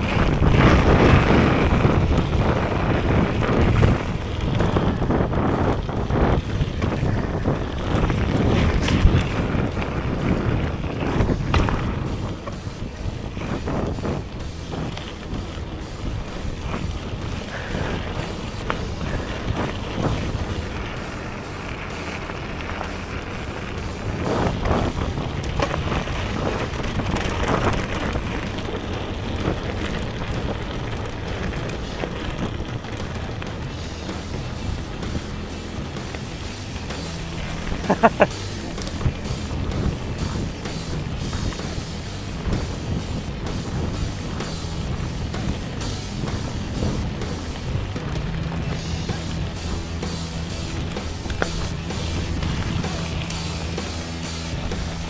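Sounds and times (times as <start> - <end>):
bike tyres rumbling over gravel: 0.0 - 55.0
wind buffeting microphone: 0.0 - 55.0
background music: 30.5 - 55.0.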